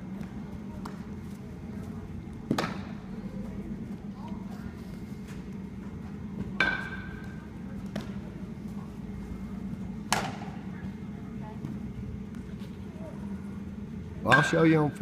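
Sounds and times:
indoor hall hum: 0:00.0 - 0:15.0.

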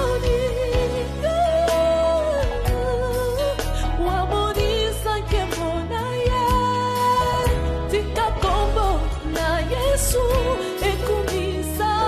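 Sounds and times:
band with bass and drums: 0:00.0 - 0:12.0
woman singing gospel: 0:00.0 - 0:12.0.

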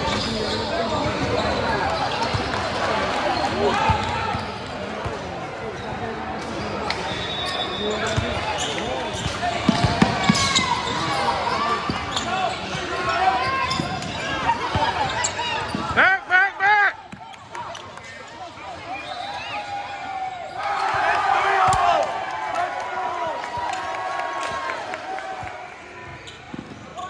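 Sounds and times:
people talking and calling out: 0:00.0 - 0:27.0.

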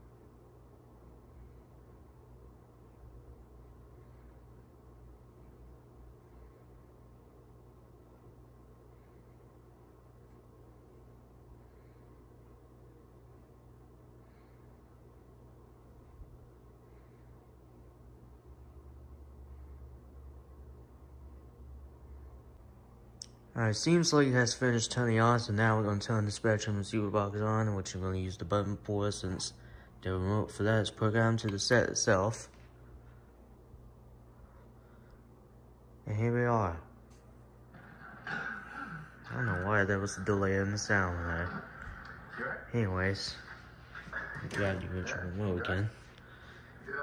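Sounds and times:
faint low hum: 0:00.0 - 0:47.0
film soundtrack from television speakers: 0:00.0 - 0:47.0.

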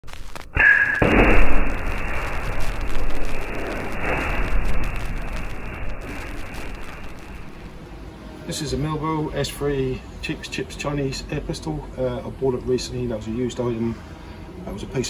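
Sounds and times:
muffled explosion with rumbling tail: 0:01.0 - 0:07.9.

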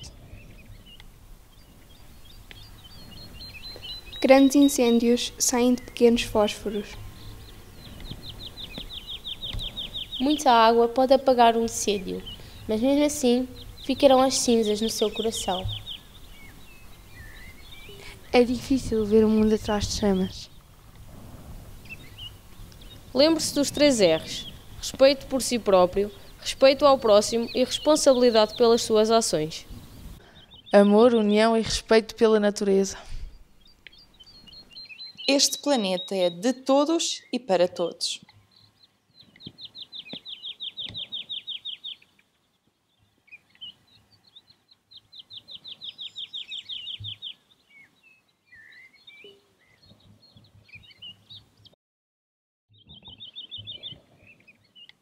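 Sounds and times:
songbird trills: 0:00.0 - 0:21.0, 0:21.8 - 0:31.8, 0:33.1 - 0:51.7, 0:52.7 - 0:55.0
steady low rumble: 0:11.2 - 0:30.2.

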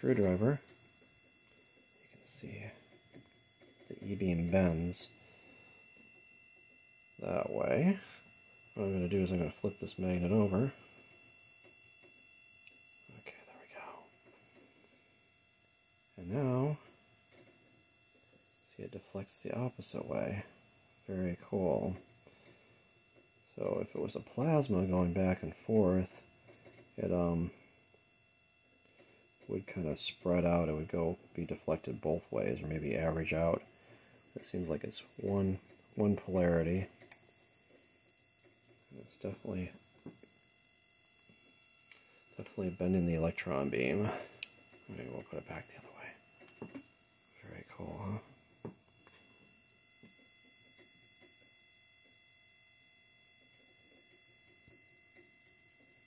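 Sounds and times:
faint high-pitched tones: 0:00.0 - 0:56.0
high-voltage power supply whine: 0:00.0 - 0:56.0.

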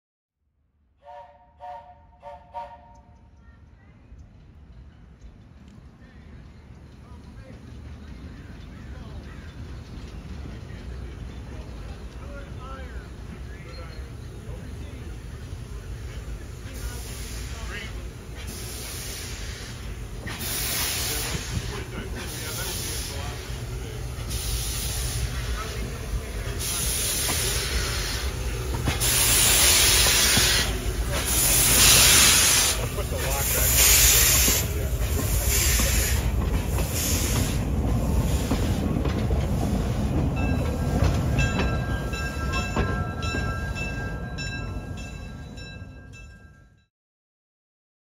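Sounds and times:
steam locomotive chuffing: 0:01.0 - 0:45.8
long steam blasts: 0:06.0 - 0:44.0.

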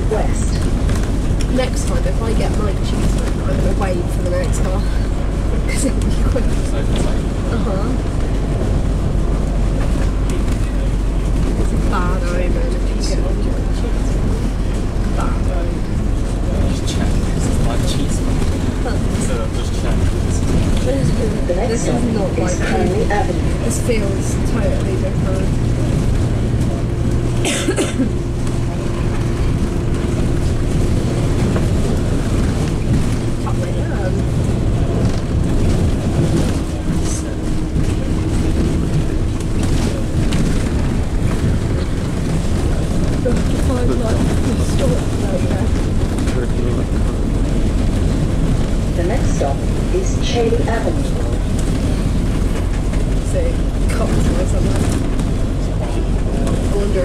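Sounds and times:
bus engine and road noise: 0:00.0 - 0:57.0
low hum: 0:00.0 - 0:57.0.

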